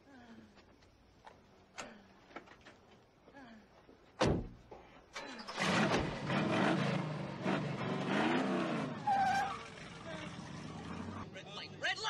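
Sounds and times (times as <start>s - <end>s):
car engine revving hard: 5.6s - 9.1s.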